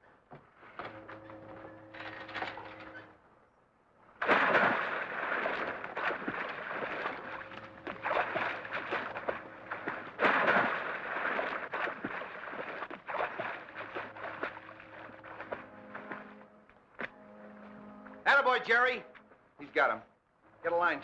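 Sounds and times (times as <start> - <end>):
water splashing and churning: 4.0 - 19.0.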